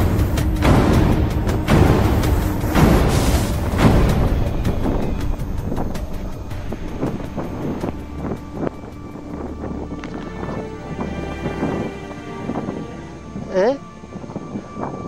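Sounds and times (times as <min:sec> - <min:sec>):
soft background music: 0:00.0 - 0:15.0
wind rumbling on microphone: 0:00.0 - 0:15.0.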